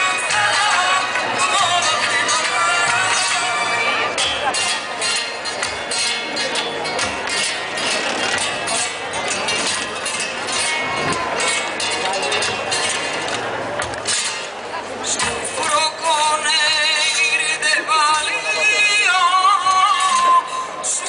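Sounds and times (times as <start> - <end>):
flamenco music through speakers: 0.0 - 21.0.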